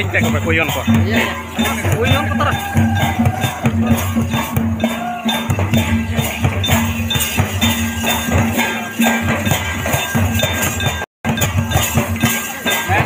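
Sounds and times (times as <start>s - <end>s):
barrel drum beating: 0.0s - 13.0s
metallic clinking percussion: 0.0s - 13.0s.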